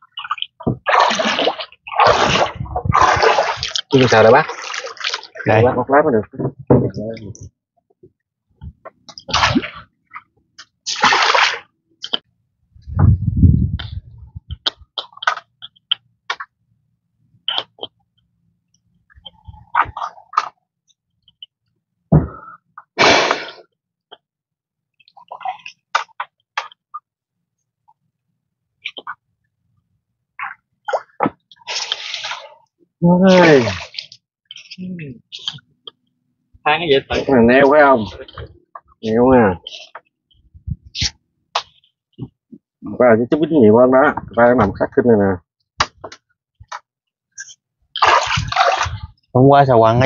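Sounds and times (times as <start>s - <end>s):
water splashing: 0.0s - 5.8s, 9.1s - 12.3s, 30.4s - 35.7s, 47.9s - 49.2s.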